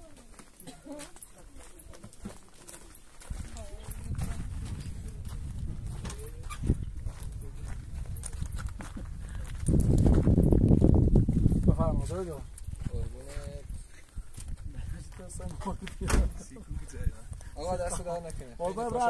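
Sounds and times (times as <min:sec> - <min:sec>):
footsteps on gravel: 0:00.0 - 0:16.0
wind rumbling on microphone: 0:03.2 - 0:18.6.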